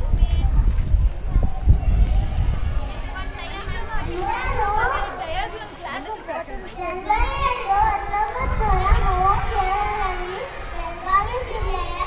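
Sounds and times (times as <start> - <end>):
low rumble: 0.0 - 5.2
child speaking into microphone: 0.0 - 12.0.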